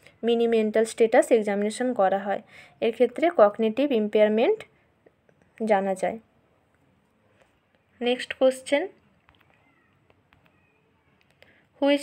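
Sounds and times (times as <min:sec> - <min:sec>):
cat meowing: 0:09.4 - 0:11.2.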